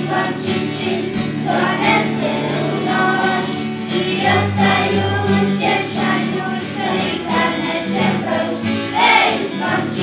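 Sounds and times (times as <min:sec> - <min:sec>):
children's choir singing: 0:00.0 - 0:10.0
instrumental accompaniment: 0:00.0 - 0:10.0.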